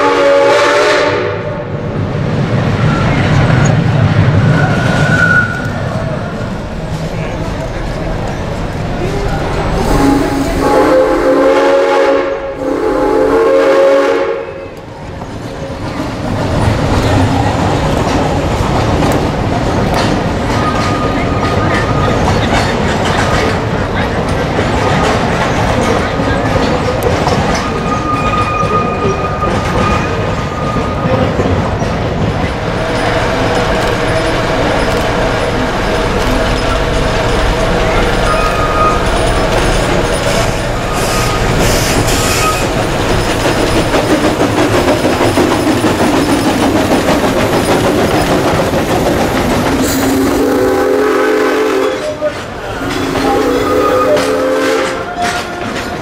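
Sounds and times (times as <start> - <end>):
steam locomotive whistle: 0.0 - 1.7, 9.8 - 14.8, 37.9 - 39.2, 40.8 - 42.8, 49.8 - 55.7
train wheel clatter: 2.3 - 56.0.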